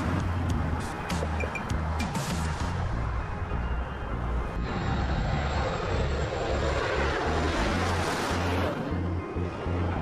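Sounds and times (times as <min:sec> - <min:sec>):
jet engines roaring overhead: 0:00.0 - 0:10.0.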